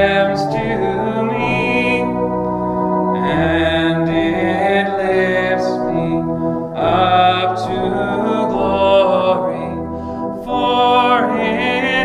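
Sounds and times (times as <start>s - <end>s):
man singing a hymn: 0.0s - 12.0s
sustained instrumental accompaniment: 0.0s - 12.0s.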